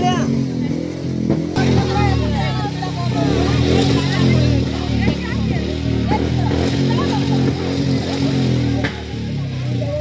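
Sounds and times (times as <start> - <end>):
women's voices overlapping: 0.0 - 10.0.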